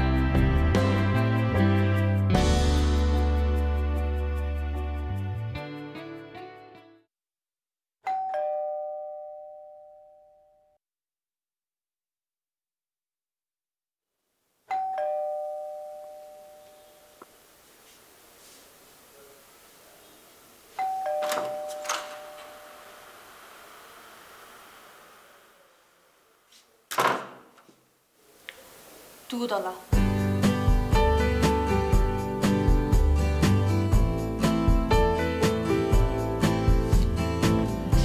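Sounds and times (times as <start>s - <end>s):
two-note doorbell chime: 8.0s - 10.7s, 14.7s - 17.1s, 20.8s - 23.0s.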